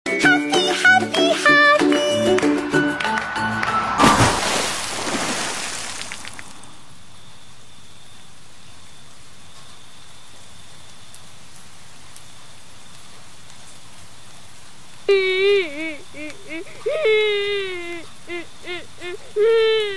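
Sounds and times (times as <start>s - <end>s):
vehicle splashing through puddle: 3.0s - 6.8s
soft hiss: 4.0s - 19.9s
cartoon cat crying wail: 15.1s - 19.9s.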